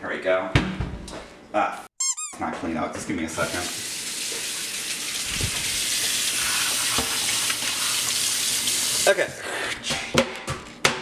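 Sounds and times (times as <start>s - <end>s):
faucet water running into sink: 3.4s - 9.3s.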